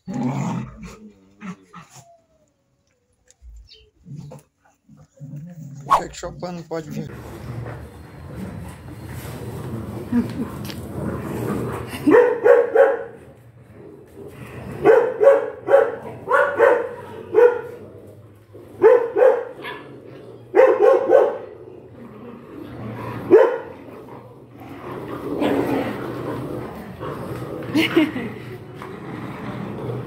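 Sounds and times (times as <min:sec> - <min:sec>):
puppies barking: 0:12.1 - 0:13.2, 0:14.8 - 0:17.8, 0:18.7 - 0:21.6, 0:23.2 - 0:23.8.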